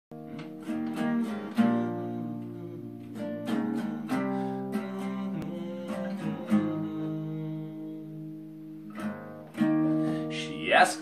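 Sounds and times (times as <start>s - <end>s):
acoustic guitar strummed chords: 0.1s - 11.0s.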